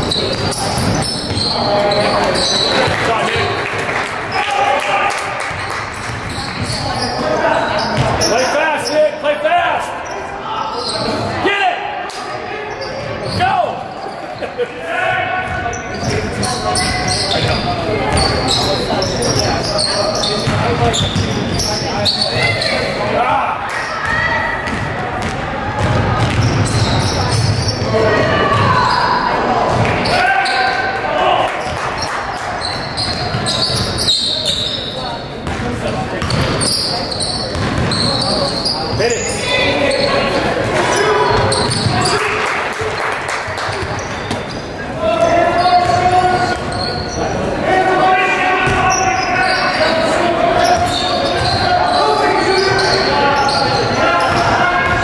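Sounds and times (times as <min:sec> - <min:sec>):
basketball bouncing on floor: 0:24.6 - 0:26.8.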